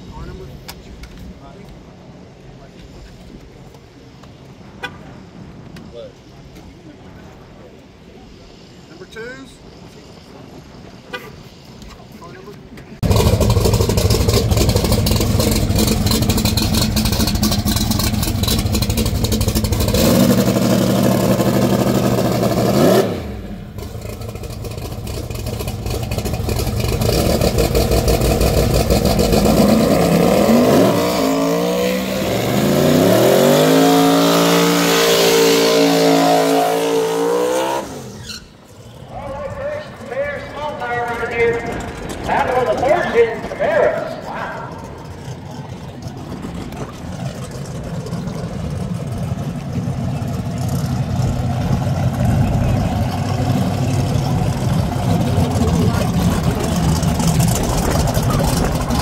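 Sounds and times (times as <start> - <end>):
drag-race car engine revving: 13.0 - 59.0.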